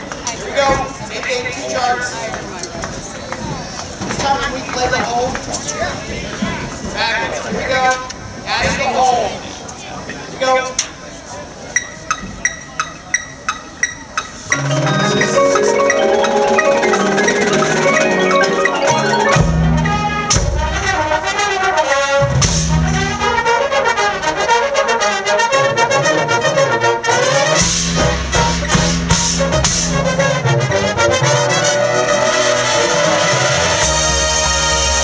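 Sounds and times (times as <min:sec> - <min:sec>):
marimbas and mallet percussion: 0:11.8 - 0:20.8
brass line playing loudly: 0:14.5 - 0:35.0
heavy low brass notes: 0:14.5 - 0:35.0.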